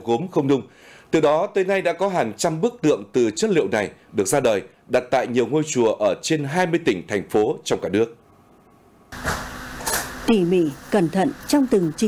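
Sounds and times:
steady mechanical hum with hiss: 0.0s - 12.0s.

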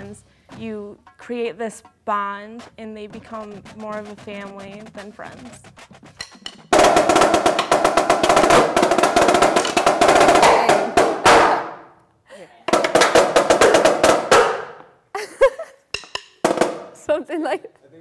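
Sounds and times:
snare drum roll: 2.6s - 11.8s, 12.7s - 14.8s.

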